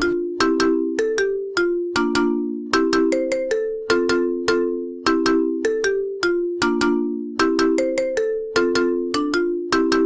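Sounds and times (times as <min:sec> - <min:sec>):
film music with bell-like melody: 0:00.0 - 0:10.0.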